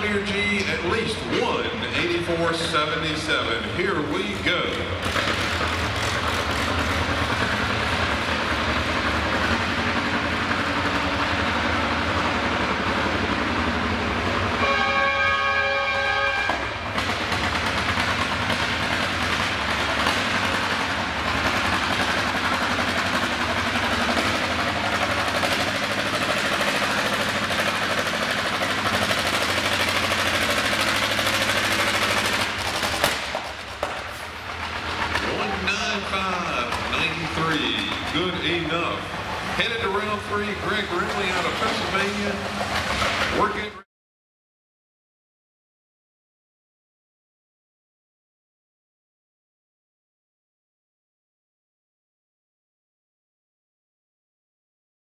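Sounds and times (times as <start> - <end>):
tractor engine under full load: 0.0 - 43.8
steady pitched horn tone: 14.6 - 16.8.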